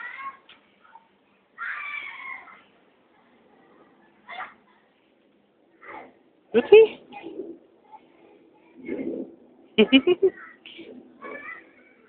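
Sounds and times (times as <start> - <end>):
person laughing: 9.8 - 10.4.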